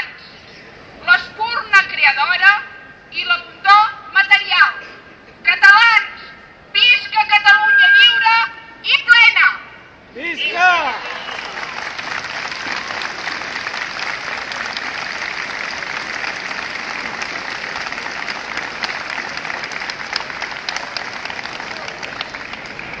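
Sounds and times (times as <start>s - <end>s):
group applauding: 10.4s - 23.0s.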